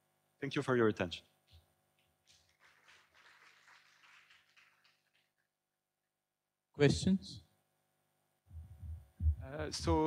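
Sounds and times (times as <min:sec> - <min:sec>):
faint ragged applause: 0:02.3 - 0:05.5.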